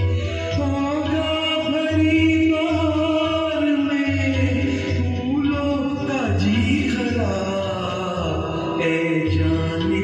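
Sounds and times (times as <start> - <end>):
man singing into a microphone: 0.0 - 10.0
recorded musical backing track: 0.0 - 10.0.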